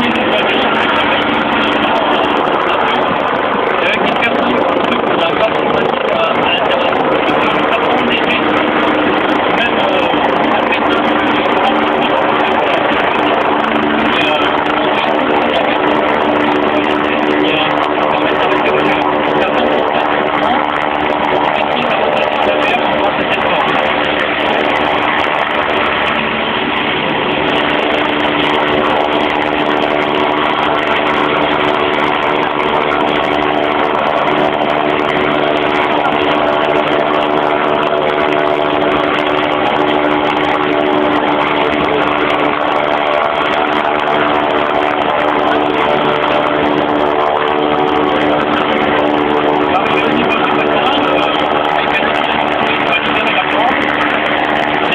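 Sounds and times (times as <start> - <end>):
helicopter hovering: 0.0 - 54.9.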